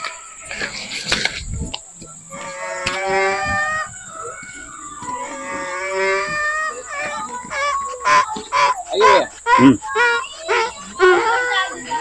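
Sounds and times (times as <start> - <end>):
livestock calling: 0.0 - 12.0.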